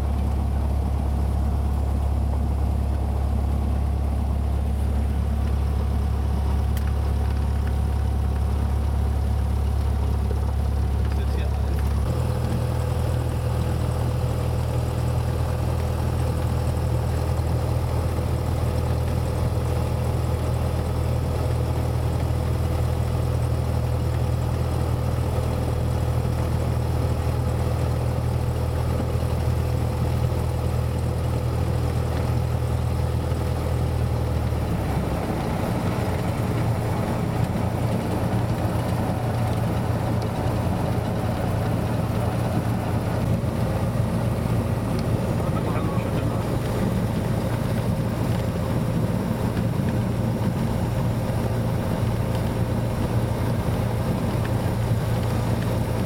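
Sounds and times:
piston engine and propeller running: 0:00.0 - 0:56.0.

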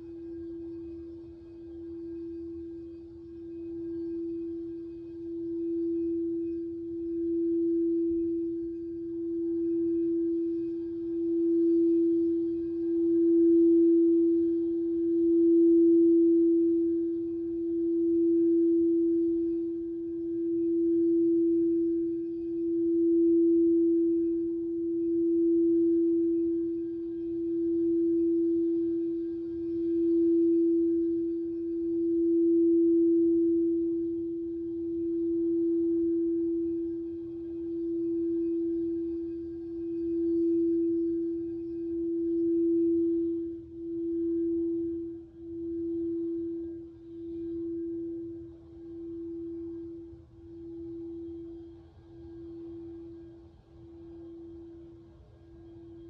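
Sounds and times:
singing bowl tone: 0:00.0 - 0:56.0.

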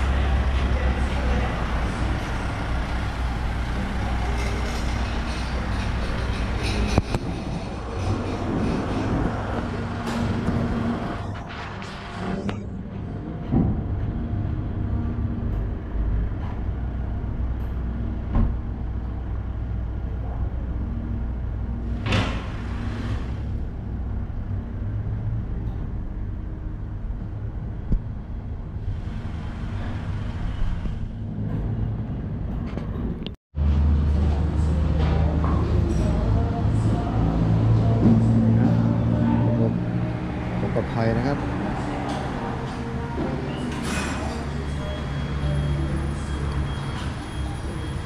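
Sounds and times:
truck engine droning: 0:00.0 - 0:48.0.

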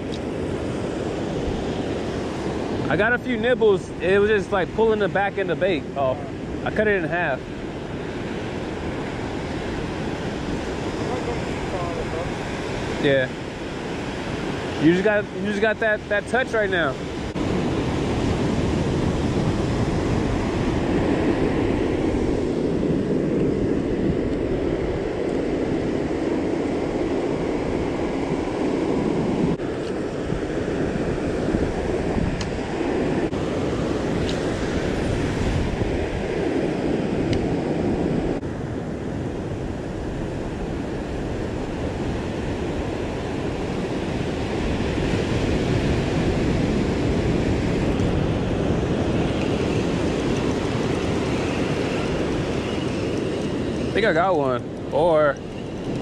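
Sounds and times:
ocean surf breaking on beach: 0:00.0 - 0:56.0
wind on microphone: 0:00.0 - 0:56.0.

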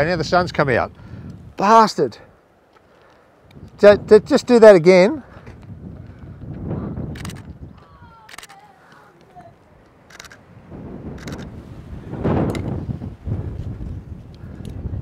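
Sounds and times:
wind rumbling on microphone: 0:00.0 - 0:01.6, 0:03.4 - 0:15.0
camera shutter clicks: 0:07.2 - 0:07.5, 0:08.2 - 0:08.7, 0:10.1 - 0:10.4, 0:11.2 - 0:11.5.

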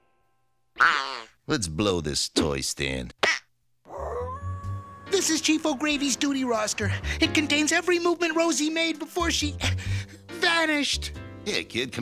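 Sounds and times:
dog howling: 0:03.9 - 0:05.4.

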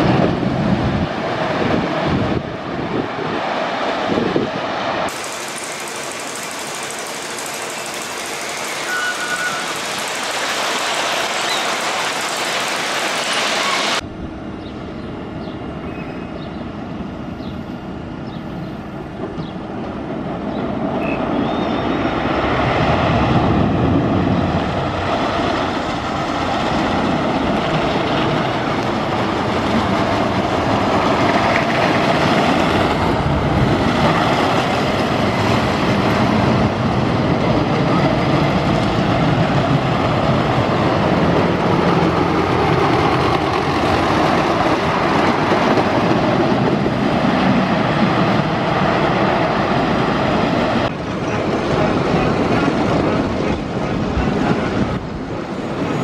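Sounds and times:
roller coaster rumbling on track: 0:00.0 - 0:56.0.

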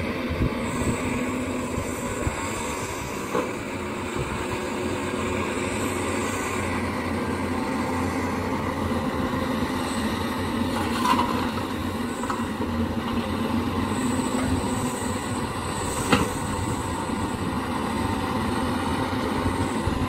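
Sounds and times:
heavy diesel machinery running: 0:00.0 - 0:20.0.

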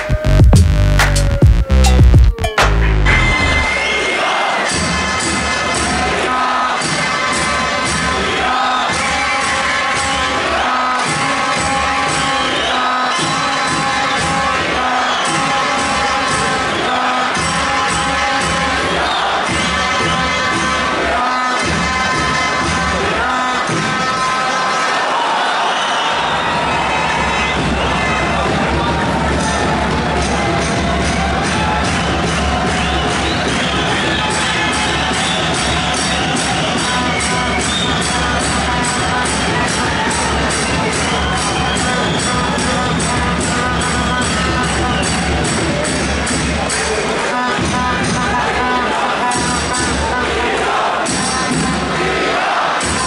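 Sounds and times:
crowd cheering and chanting: 0:00.0 - 0:53.0
music: 0:00.0 - 0:53.0.

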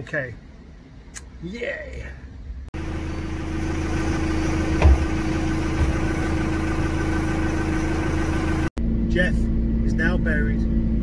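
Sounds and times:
engine idling: 0:02.8 - 0:11.0.

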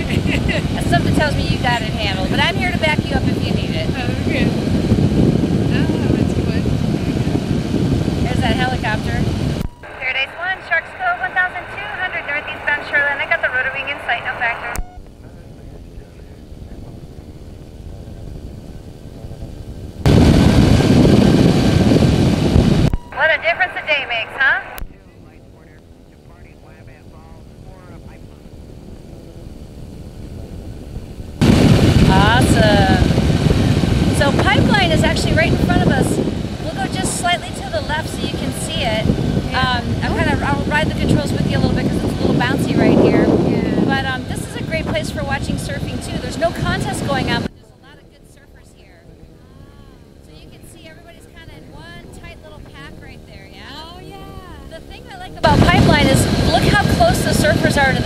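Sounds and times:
aircraft engine and propeller: 0:00.0 - 0:58.0
wind rush: 0:00.0 - 0:58.0.

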